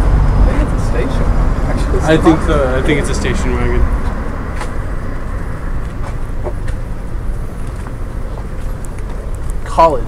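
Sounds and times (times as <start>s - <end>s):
street background rumble: 0.0s - 10.0s.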